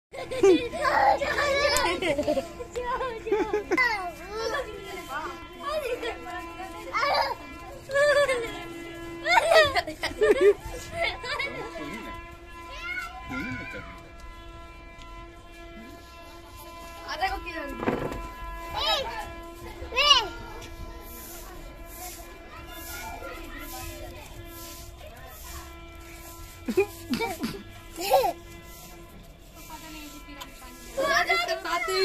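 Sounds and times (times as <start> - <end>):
young children talking and calling out: 0.2 - 32.0.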